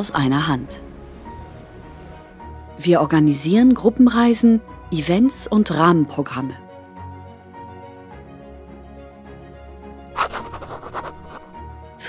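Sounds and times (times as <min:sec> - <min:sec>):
soft background music: 0:00.0 - 0:12.0
scratchy scribbling: 0:10.2 - 0:11.6.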